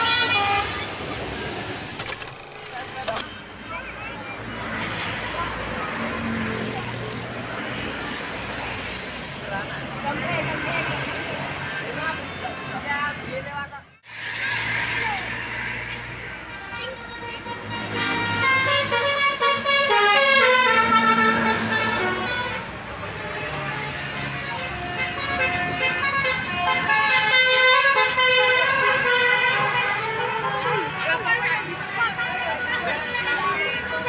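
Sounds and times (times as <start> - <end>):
passing traffic: 0.0 - 34.0.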